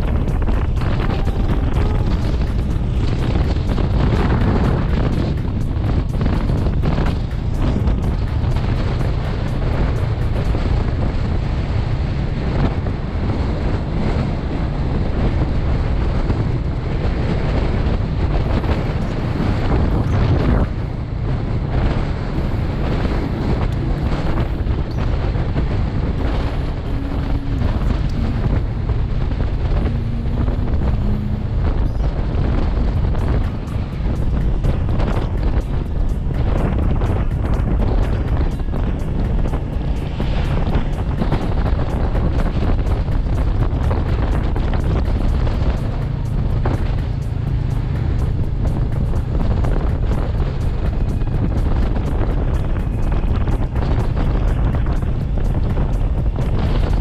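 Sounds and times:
motorcycle engine: 0:00.0 - 0:57.0
road noise: 0:00.0 - 0:57.0
wind buffeting microphone: 0:00.0 - 0:57.0.

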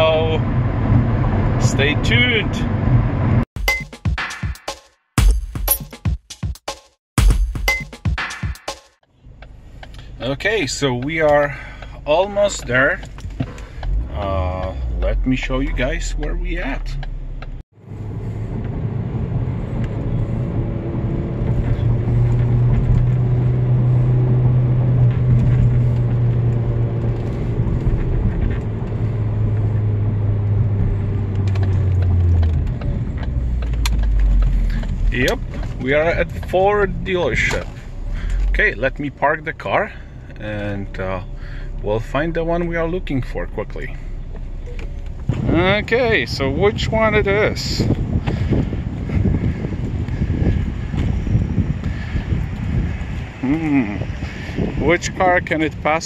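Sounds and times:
car engine and road noise: 0:00.0 - 0:03.5, 0:09.0 - 0:56.0
wind buffeting microphone: 0:45.0 - 0:56.0.

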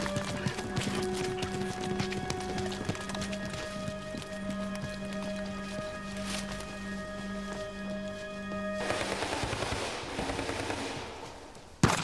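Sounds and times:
sustained music chord: 0:00.0 - 0:09.3.

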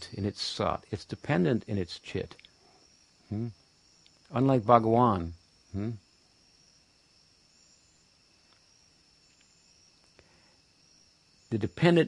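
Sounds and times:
faint room-tone hiss: 0:00.0 - 0:12.0
small click: 0:09.3 - 0:09.5.

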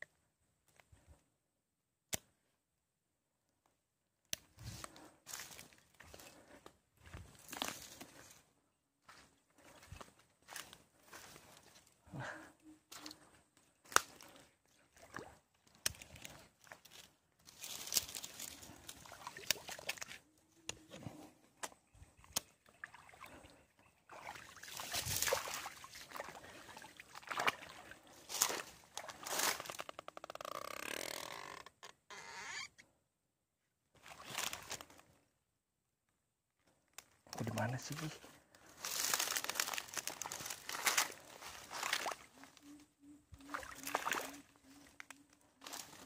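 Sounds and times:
dry grass rustling and crackling: 0:04.6 - 0:08.4, 0:15.7 - 0:20.1, 0:28.1 - 0:30.0, 0:37.0 - 0:42.6, 0:43.8 - 0:46.0.

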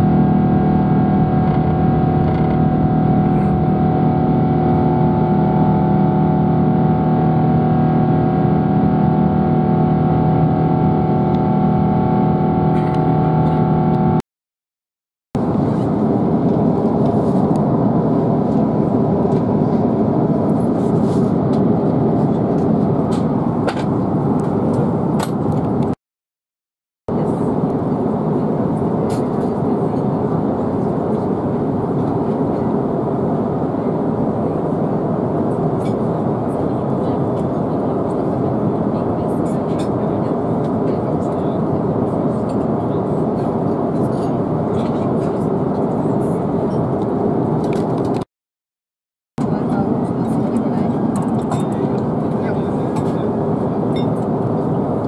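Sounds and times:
cabin airflow rush: 0:00.0 - 0:14.1, 0:15.4 - 0:26.0
jet engine rumble: 0:00.0 - 0:14.2, 0:15.4 - 0:26.0, 0:27.1 - 0:48.3, 0:49.4 - 0:55.0.

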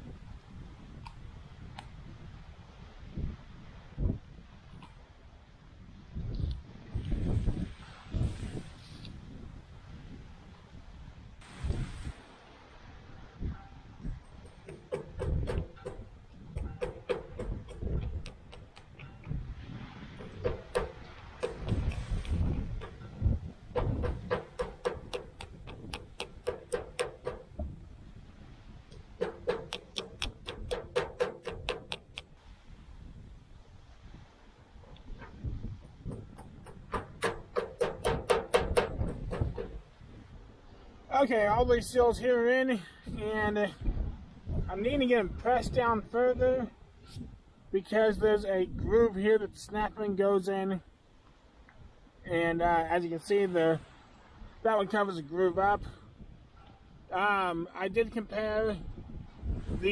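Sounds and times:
handling noise: 0:14.1 - 0:27.9, 0:28.9 - 0:32.4, 0:34.8 - 0:40.0
small hammer tapping on metal: 0:14.4 - 0:19.3, 0:20.2 - 0:23.0, 0:23.8 - 0:27.6, 0:29.2 - 0:32.3, 0:36.1 - 0:39.8.

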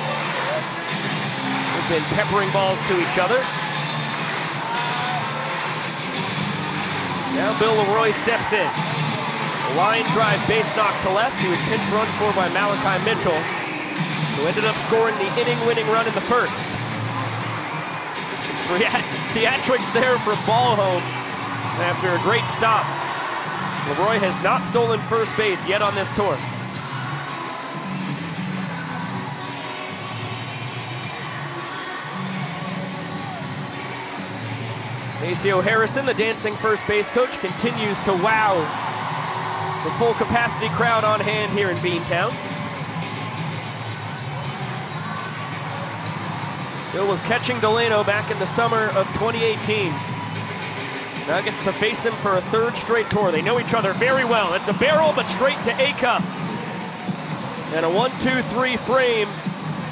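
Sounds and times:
music over stadium sound system: 0:00.0 - 0:59.9
stadium crowd noise: 0:00.0 - 0:59.9.

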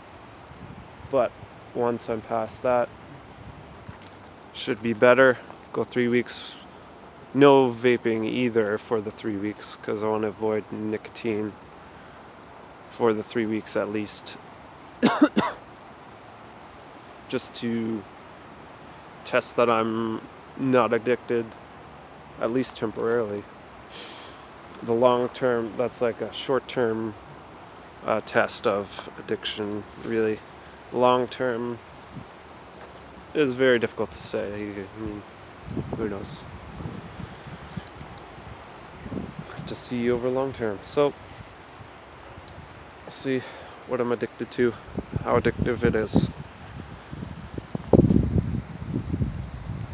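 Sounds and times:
wind rumble on microphone: 0:00.4 - 0:05.0, 0:34.0 - 0:42.9, 0:44.8 - 0:49.9
man coughing: 0:15.0 - 0:15.6
faint rustling: 0:27.0 - 0:33.4.

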